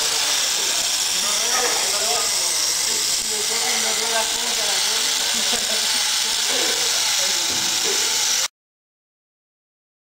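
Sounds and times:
toy motor whirring: 0:00.0 - 0:08.5.

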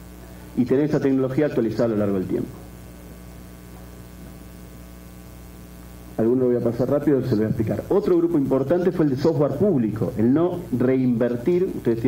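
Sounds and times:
electrical mains hum: 0:00.0 - 0:12.0
faint microphone hiss: 0:00.0 - 0:12.0.

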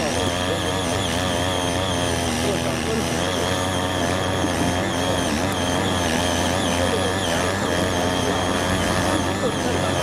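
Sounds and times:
tiller engine churning soil: 0:00.0 - 0:10.0.

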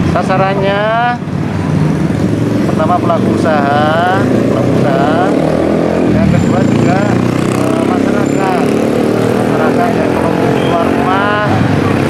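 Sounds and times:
motorbike engines running: 0:00.0 - 0:12.0
street traffic: 0:00.0 - 0:12.0
people talking: 0:02.7 - 0:05.4, 0:06.1 - 0:12.0.

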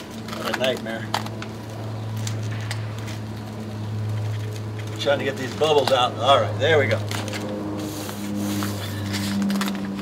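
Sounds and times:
steady low hum: 0:00.0 - 0:10.0
gloved hands rubbing membrane: 0:07.8 - 0:09.4.

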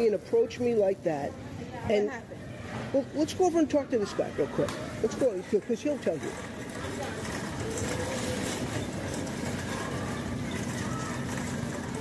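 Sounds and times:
shopping cart rattling: 0:03.0 - 0:12.0.

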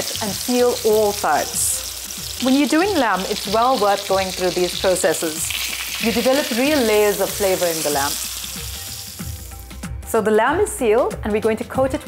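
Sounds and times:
meat sizzling in a frying pan: 0:00.0 - 0:09.9.

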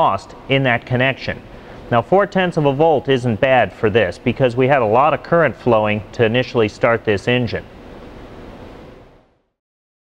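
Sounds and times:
room tone hiss: 0:00.0 - 0:09.6.

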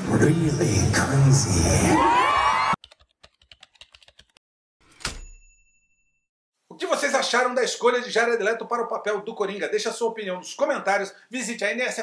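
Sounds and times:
keyboard typing clicks: 0:02.8 - 0:04.4.

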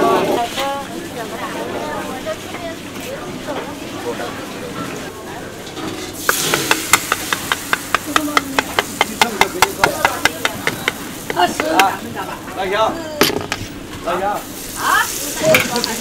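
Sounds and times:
background chatter: 0:00.0 - 0:16.0
oil sizzling: 0:00.4 - 0:12.8, 0:13.5 - 0:16.0.

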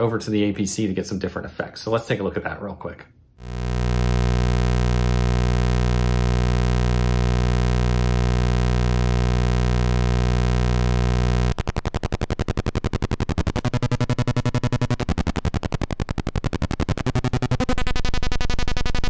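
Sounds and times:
buzzy synth drone: 0:03.4 - 0:19.0.

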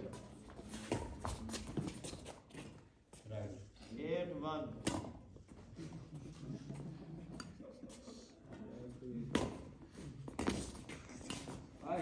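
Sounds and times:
racket hitting shuttlecock: 0:04.8 - 0:05.2.

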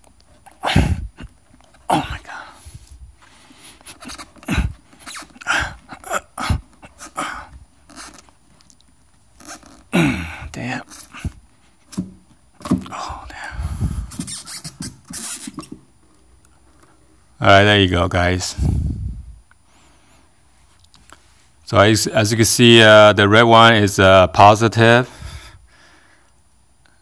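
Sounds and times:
man grunting: 0:00.6 - 0:01.3, 0:01.9 - 0:02.4, 0:04.4 - 0:04.8, 0:05.4 - 0:07.5, 0:09.9 - 0:11.3.

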